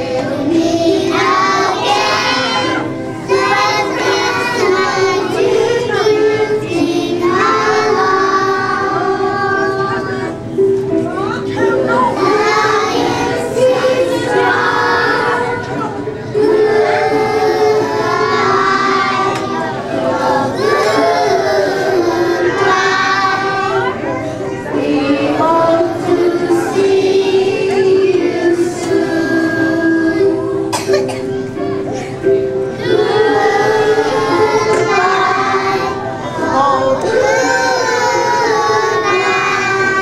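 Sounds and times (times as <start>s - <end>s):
children singing in unison: 0.0s - 10.5s, 11.6s - 40.0s.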